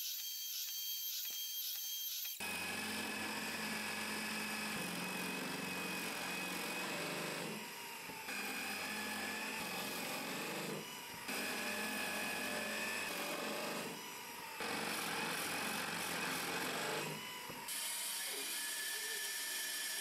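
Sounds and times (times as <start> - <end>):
drill press boring into wood: 0.1 - 20.0.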